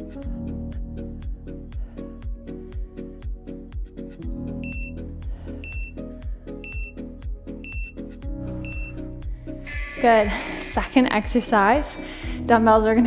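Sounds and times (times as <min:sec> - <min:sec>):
background music with steady beat: 0:00.0 - 0:13.0
short high beeps: 0:07.6 - 0:08.0, 0:08.6 - 0:09.0.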